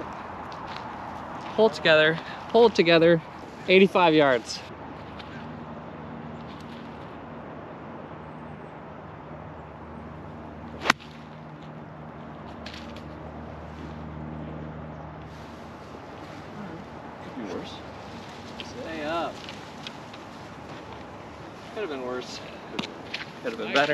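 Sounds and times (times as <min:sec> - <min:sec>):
golf club striking ball: 0:10.8 - 0:11.3.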